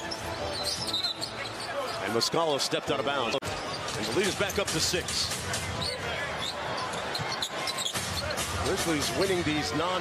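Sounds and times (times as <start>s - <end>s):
shoe squeaks: 0.0s - 2.2s, 3.4s - 4.6s, 5.7s - 8.4s
arena crowd noise: 0.0s - 10.0s.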